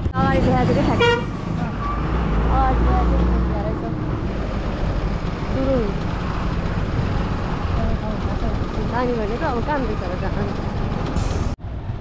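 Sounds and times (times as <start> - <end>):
moving vehicle rumble: 0.0 - 12.0.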